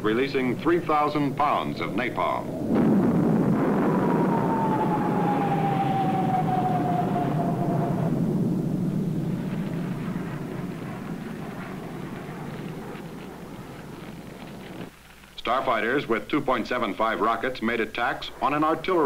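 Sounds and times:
jet aircraft roaring past: 0.0 - 14.9.

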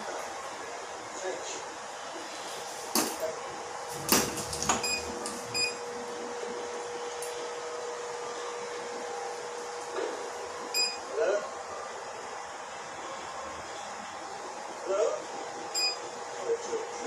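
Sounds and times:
curing light humming: 1.7 - 16.5
electronic beep: 10.8 - 11.0, 15.8 - 16.0.

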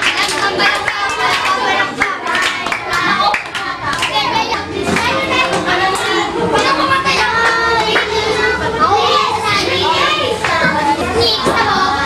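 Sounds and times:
children clapping: 0.0 - 8.4, 10.2 - 11.9
children singing and calling out: 0.0 - 12.0.

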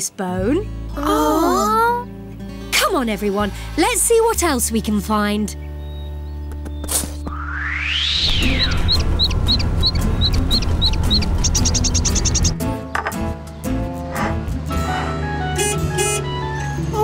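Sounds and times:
background music: 0.0 - 17.0
swoosh sweeping in pitch: 7.3 - 10.5
cartoon bird chirping: 8.2 - 12.6.

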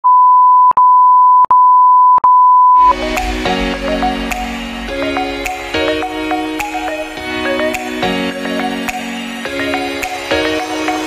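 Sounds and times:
steady electronic beep: 0.0 - 8.0
music with a beat: 2.8 - 11.0.

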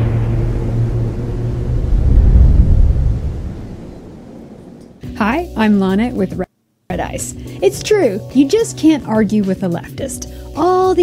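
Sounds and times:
booming hit: 0.0 - 5.0
deep low rumble: 0.0 - 5.0.

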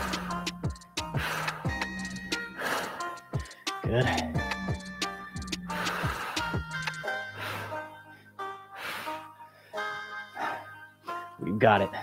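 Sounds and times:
music with held notes: 0.0 - 12.0.

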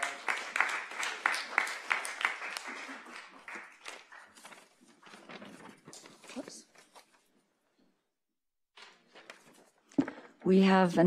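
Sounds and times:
audience applause: 0.0 - 4.4.

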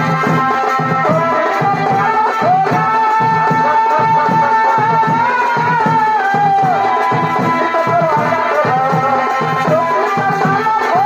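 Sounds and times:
steady drum beats: 0.0 - 11.0.

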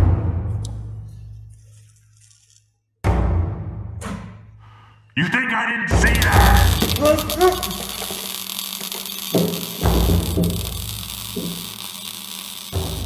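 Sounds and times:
steady hiss: 6.0 - 13.0.

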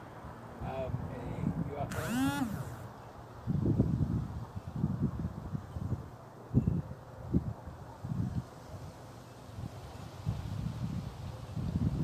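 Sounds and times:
wind buffeting microphone: 0.6 - 12.0.

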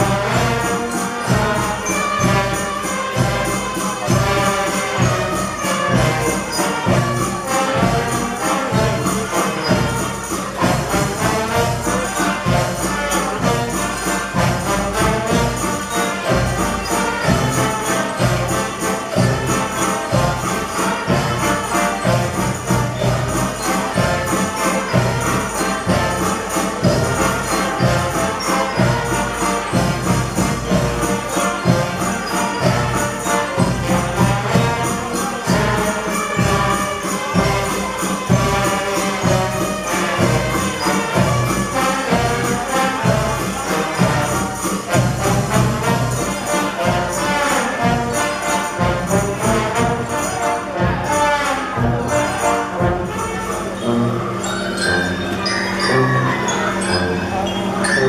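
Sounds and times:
brass band playing: 0.0 - 58.0.

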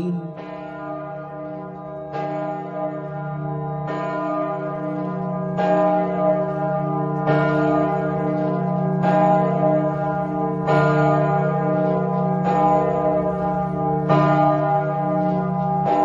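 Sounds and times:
church bells ringing: 0.0 - 16.0.

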